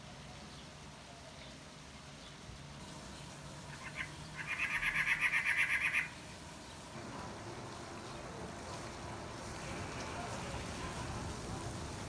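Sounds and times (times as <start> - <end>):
bird chattering call: 3.7 - 6.2.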